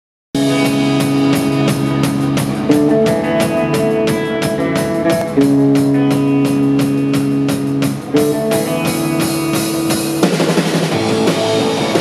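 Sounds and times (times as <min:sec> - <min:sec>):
drum kit beat: 0:00.4 - 0:12.0
electric bass: 0:00.4 - 0:12.0
electric guitar chords: 0:00.4 - 0:12.0.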